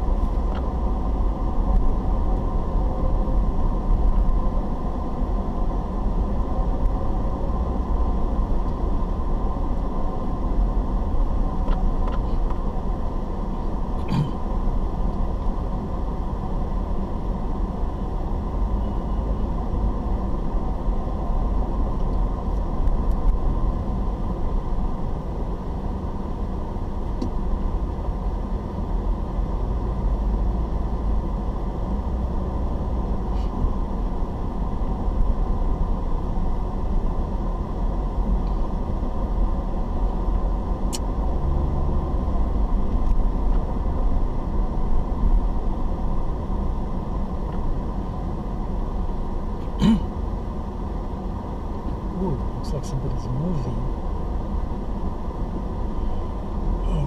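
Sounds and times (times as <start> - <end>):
car engine and tyres rumbling: 0.0 - 57.0.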